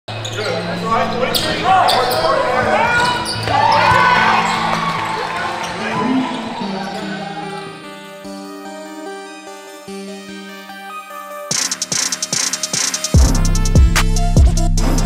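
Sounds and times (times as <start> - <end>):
voices in a gym: 0.4 - 4.4
music with held bass notes: 13.2 - 15.0.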